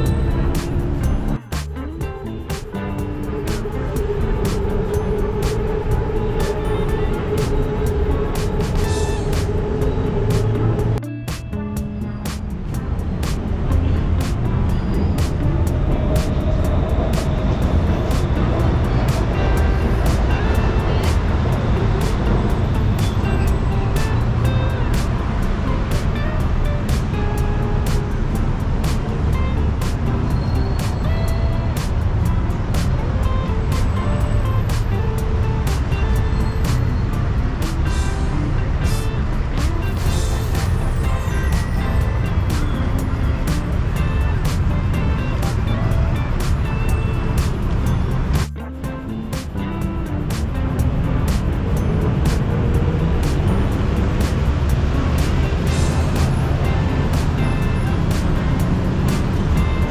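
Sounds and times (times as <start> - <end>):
low traffic rumble: 0.0 - 59.9
music playing: 0.0 - 59.9.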